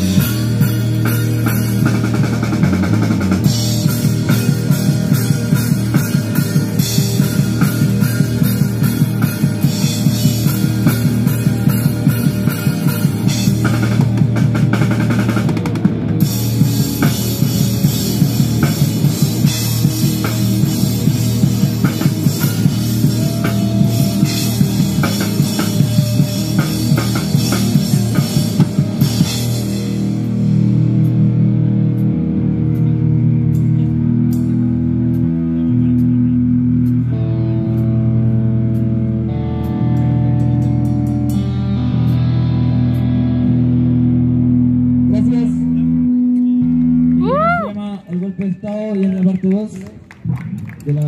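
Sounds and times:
drums and cymbals pounding: 0:00.0 - 0:43.2
punk band playing live: 0:00.0 - 0:47.7
sustained guitar and bass chords: 0:00.0 - 0:48.0.

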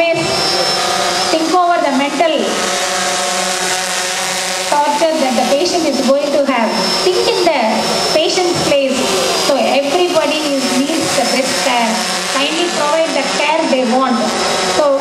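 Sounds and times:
woman speaking over loudspeaker: 0:00.0 - 0:00.3, 0:01.4 - 0:02.6, 0:04.7 - 0:15.0.

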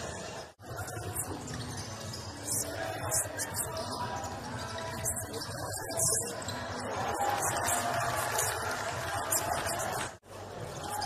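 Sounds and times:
crowd noise in hall: 0:00.0 - 0:11.0.

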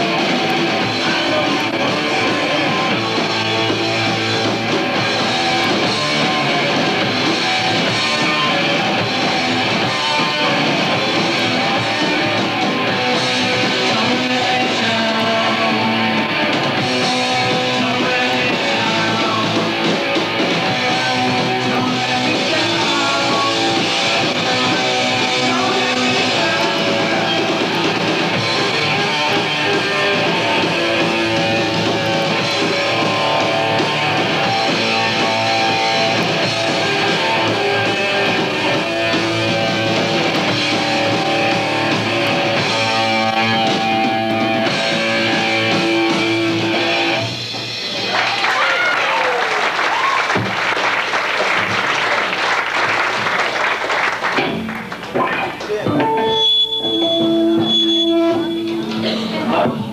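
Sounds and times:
hardcore punk band playing live: 0:00.0 - 0:59.9.

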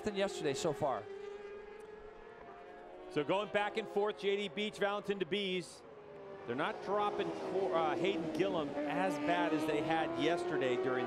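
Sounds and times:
racing motorcycle engines high revs: 0:00.0 - 0:11.0.

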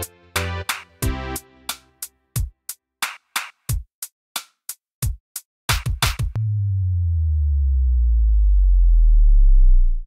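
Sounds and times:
deep synth bass tone sliding down: 0:06.4 - 0:10.0.

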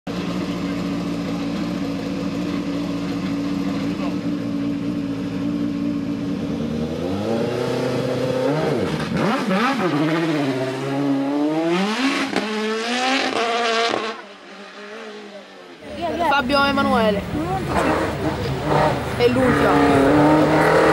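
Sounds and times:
race car engine idling and revving: 0:00.1 - 0:20.9.

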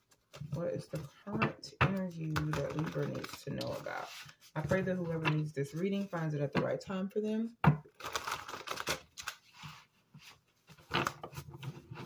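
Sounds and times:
cards being shuffled: 0:02.2 - 0:04.8, 0:08.0 - 0:09.7.

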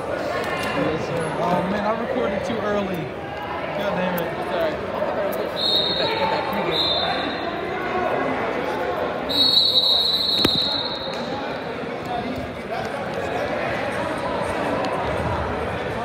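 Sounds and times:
gym chatter: 0:00.0 - 0:16.0
referee's whistle blasts: 0:05.5 - 0:07.4, 0:09.3 - 0:11.4.

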